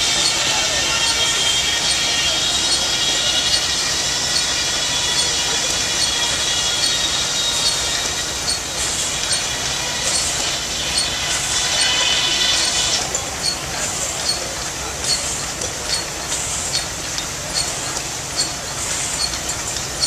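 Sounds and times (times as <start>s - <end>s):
machinery running: 0.0s - 20.0s.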